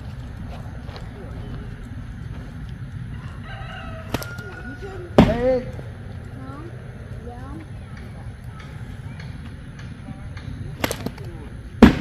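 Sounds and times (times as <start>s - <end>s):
rooster crowing: 3.0s - 5.4s
sharp crack: 4.0s - 4.4s, 8.0s - 12.0s.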